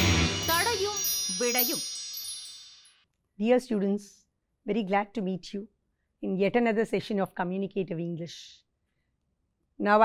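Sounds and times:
high chime-like tones: 0:00.0 - 0:03.1.

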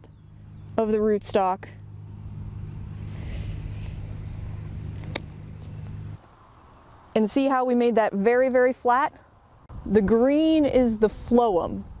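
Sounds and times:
low hum: 0:00.0 - 0:07.2
hand pruners snipping stem: 0:03.4 - 0:05.8.

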